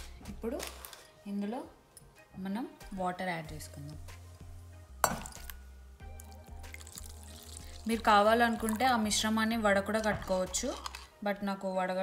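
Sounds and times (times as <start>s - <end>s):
water pouring into a bowl: 6.2s - 9.2s.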